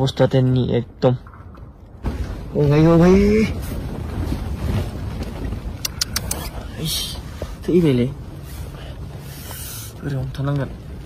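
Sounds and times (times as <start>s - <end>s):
wind rumble: 0.0s - 11.0s
tent fabric rustling: 2.5s - 11.0s
sharp clicks: 5.8s - 6.6s.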